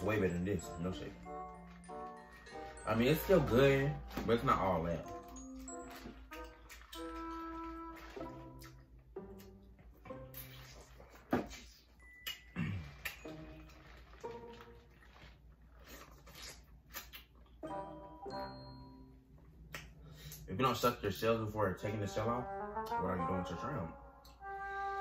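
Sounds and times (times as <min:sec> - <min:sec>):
soft background music: 0:00.0 - 0:15.8, 0:17.5 - 0:25.0.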